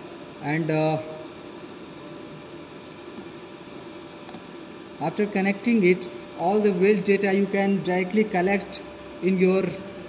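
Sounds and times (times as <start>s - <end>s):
machine hum with hiss: 0.0s - 10.0s.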